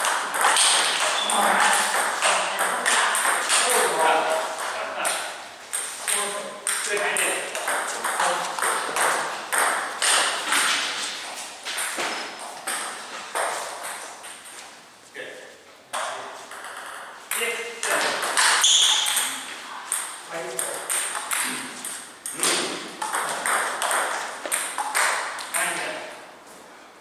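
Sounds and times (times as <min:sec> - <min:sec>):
table tennis balls clicking: 0:00.0 - 0:11.0, 0:15.9 - 0:26.0.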